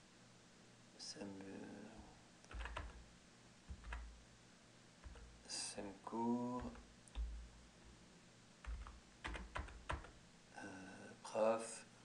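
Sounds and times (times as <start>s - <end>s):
computer keyboard keystrokes: 2.5s - 3.0s, 3.7s - 4.1s, 5.0s - 5.3s, 6.6s - 7.4s, 8.6s - 10.2s.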